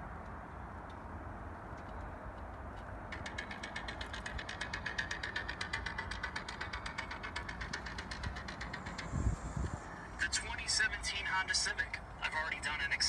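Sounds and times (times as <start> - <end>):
steady low hum: 0.0 - 13.0
rapid even ticking: 2.7 - 13.0.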